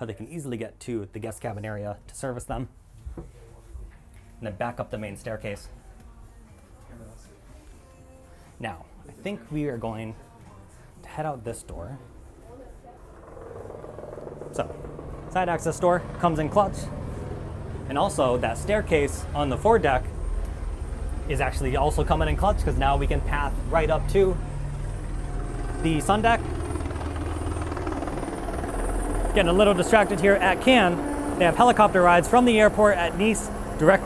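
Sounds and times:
helicopter rotor chopping: 12.0s - 34.0s
pulsing mechanical drone: 12.2s - 34.0s
man speaking: 17.9s - 20.1s, 21.3s - 24.4s, 25.7s - 26.5s, 29.3s - 34.0s.

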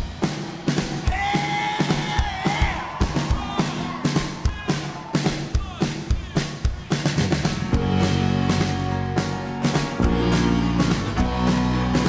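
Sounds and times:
drum kit beating: 0.0s - 12.0s
acoustic and electric guitars: 7.0s - 12.0s
keyboard: 7.2s - 12.0s.

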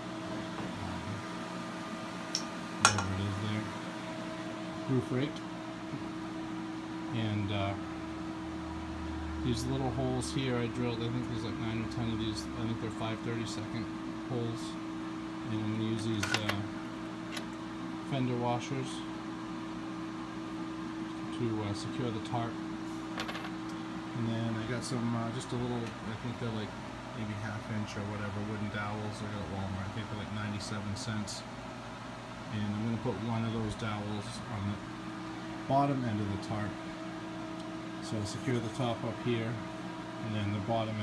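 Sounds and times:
space heater fan humming: 0.0s - 41.0s.

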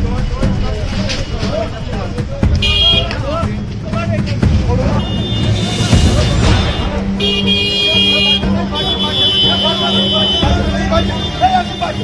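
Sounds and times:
crowd of men talking and shouting: 0.0s - 12.0s.

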